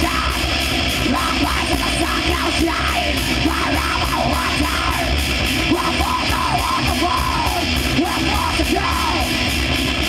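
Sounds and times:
harsh yelled vocal: 0.0 - 9.8
metal band playing: 0.0 - 10.0.

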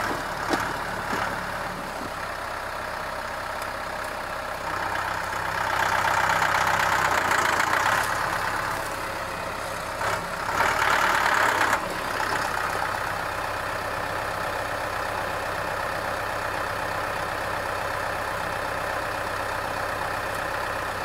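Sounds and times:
loader scooping gravel: 0.0 - 14.3
tractor diesel engine straining: 0.0 - 21.0.

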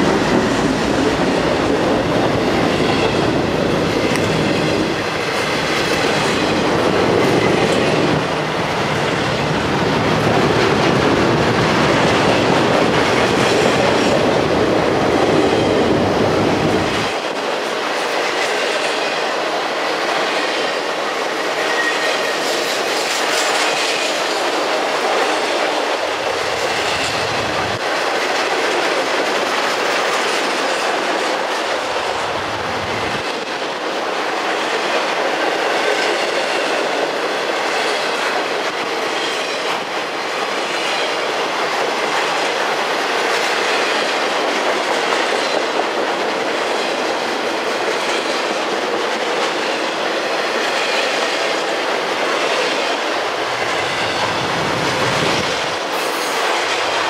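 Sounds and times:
steel wheels rushing on rail: 0.0 - 57.0.

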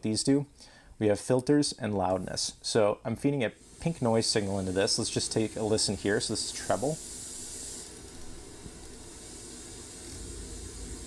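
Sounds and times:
pink noise hiss: 0.0 - 11.0.

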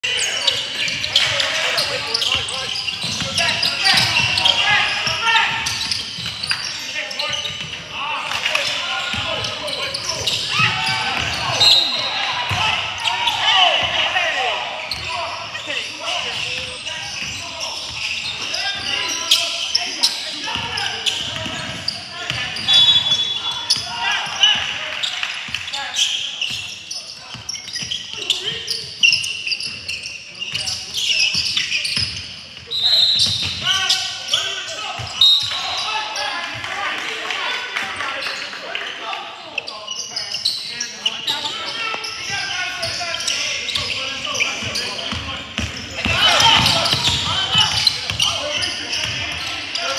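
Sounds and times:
sneakers squeaking: 0.0 - 36.7, 37.6 - 49.9
echoing indistinct voices: 0.0 - 49.9
basketball bouncing on court: 2.2 - 6.6, 7.2 - 7.8, 9.1 - 11.6, 20.5 - 24.8, 44.6 - 49.5.

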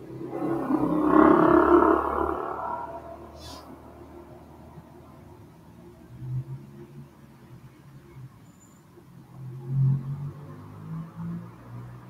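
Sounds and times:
person's drawn-out wordless vocal: 0.2 - 3.9.

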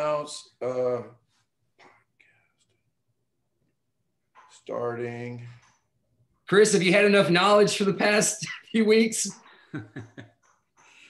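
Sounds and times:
man speaking: 0.0 - 1.4, 4.4 - 5.8, 6.4 - 9.6.

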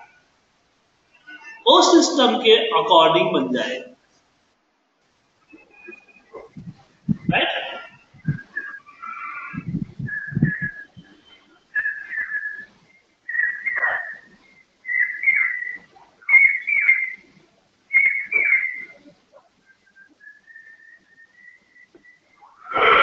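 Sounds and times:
person whistling: 5.5 - 17.2, 17.9 - 19.0, 19.8 - 23.0.

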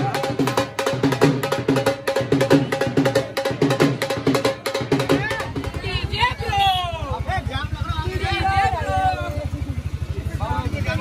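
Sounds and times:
people talking: 5.1 - 11.0.

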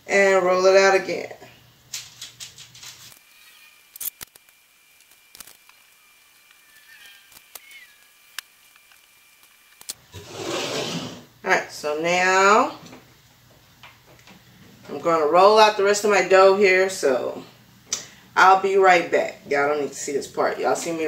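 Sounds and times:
rustling scrape of dough: 10.1 - 11.3.

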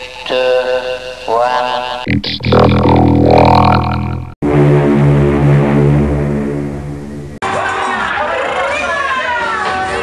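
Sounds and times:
low pulsing drone: 2.1 - 7.4.

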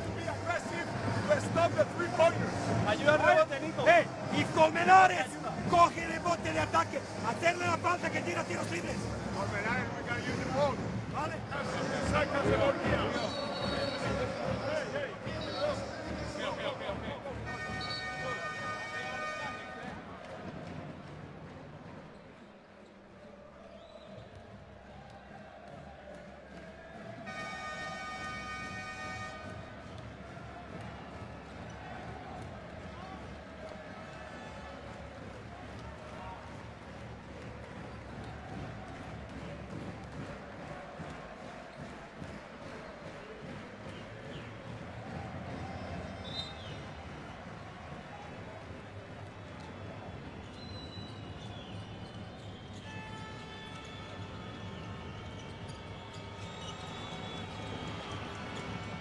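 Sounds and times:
arena crowd noise: 0.0 - 59.0
steady horn tone: 17.4 - 20.0, 27.2 - 29.6.

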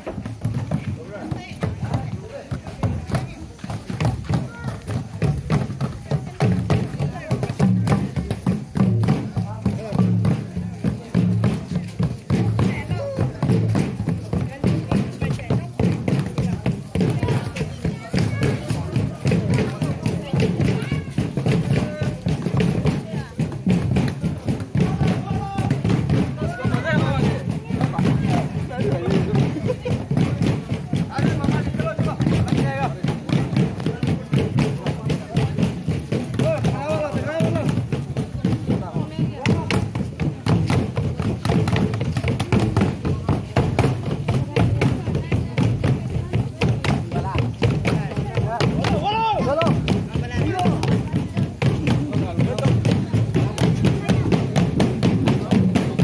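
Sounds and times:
wooden drums beaten: 0.0 - 56.0.

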